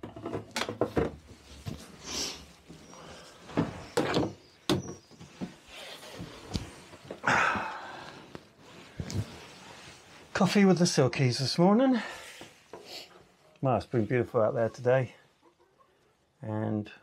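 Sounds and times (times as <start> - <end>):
knocks and thumps in wooden shed: 0.0 - 1.9, 3.5 - 5.6.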